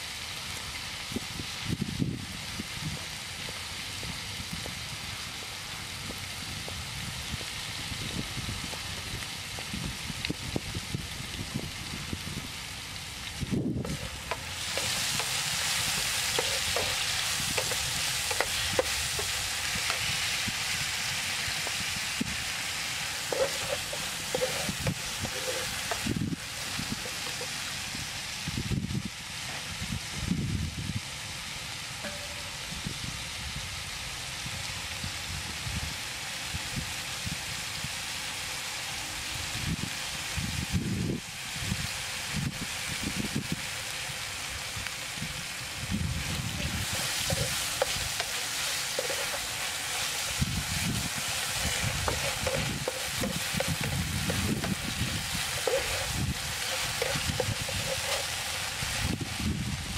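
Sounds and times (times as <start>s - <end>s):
beef sizzling in a frying pan: 0.0s - 59.9s
wooden spatula scraping a pan: 13.8s - 20.4s, 23.0s - 27.6s, 46.6s - 59.1s.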